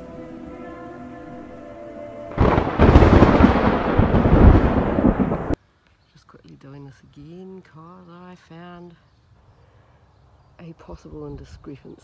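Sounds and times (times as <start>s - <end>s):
held music chord: 0.0s - 5.5s
rolling thunder rumble: 2.3s - 5.6s.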